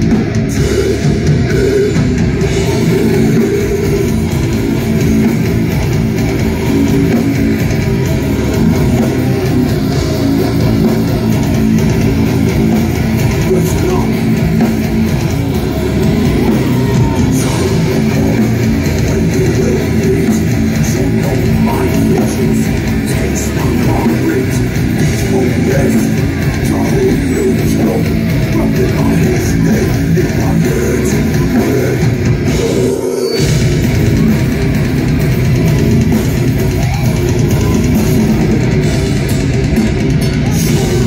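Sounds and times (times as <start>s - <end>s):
bass guitar: 0.0s - 41.0s
death metal band playing live: 0.0s - 41.0s
distorted electric guitars: 0.0s - 41.0s
drums: 0.0s - 41.0s.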